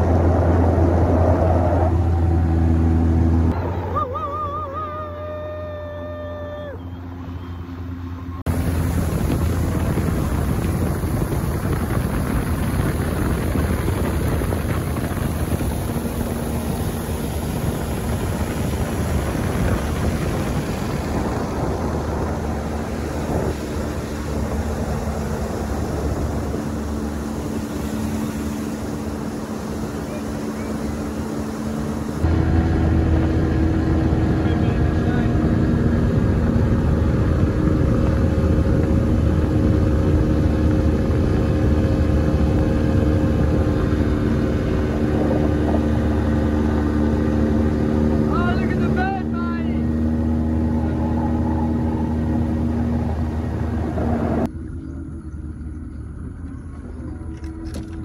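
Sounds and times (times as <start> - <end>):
outboard motor running: 0.0 - 58.0
water rushing along hull: 0.0 - 58.0.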